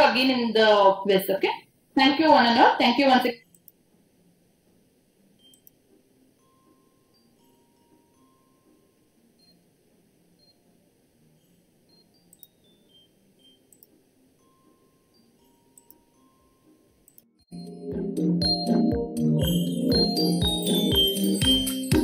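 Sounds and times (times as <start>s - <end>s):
soft mouse clicks: 3.4s - 3.8s, 5.4s - 5.8s, 12.3s - 12.6s, 13.7s - 14.0s, 15.7s - 16.0s, 17.0s - 17.3s.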